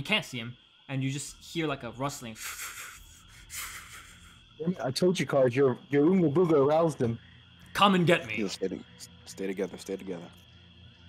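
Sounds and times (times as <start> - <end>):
man speaking: 4.6 - 7.2, 7.8 - 10.3.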